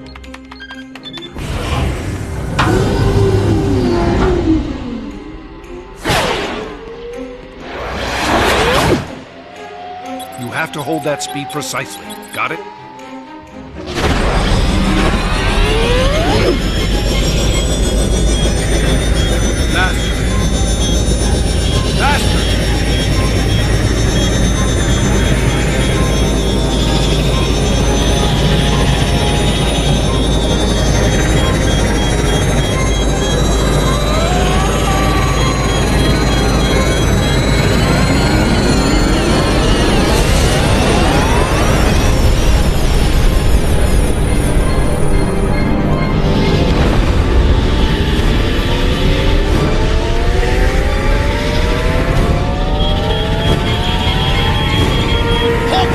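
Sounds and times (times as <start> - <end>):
orchestral score: 0.2 - 55.9
rising sweeps: 7.0 - 55.9
electronic beeping: 10.0 - 13.2, 14.8 - 42.5, 50.8 - 55.9
loud rushing roar: 46.1 - 55.9.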